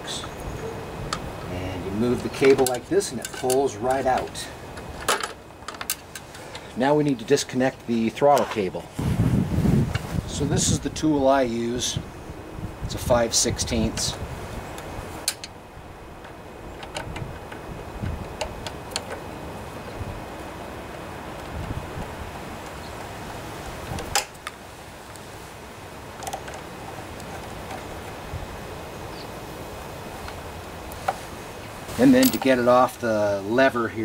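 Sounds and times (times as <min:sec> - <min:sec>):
steady background noise: 0:00.0 - 0:34.0.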